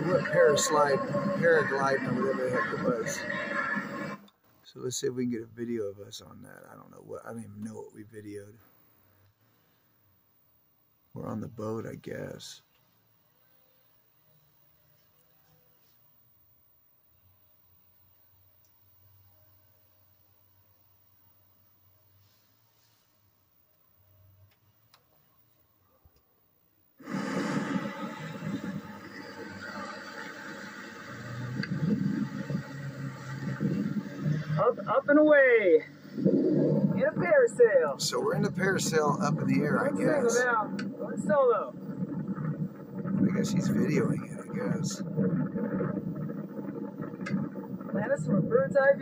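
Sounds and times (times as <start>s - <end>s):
faint clicks: 18.6s - 18.8s, 45.0s - 48.6s
rumbling outdoor noise: 27.0s - 49.0s
loud rushing fluctuating noise: 27.1s - 37.4s.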